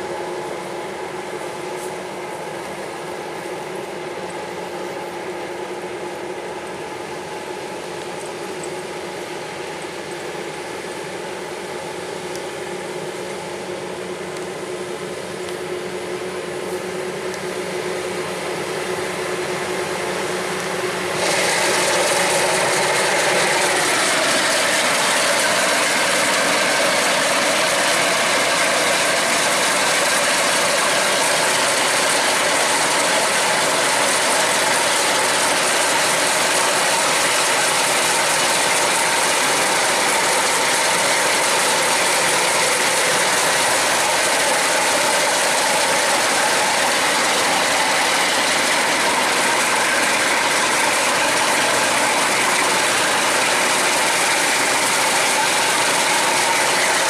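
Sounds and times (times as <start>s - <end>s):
diesel engine under load: 0.0s - 57.0s.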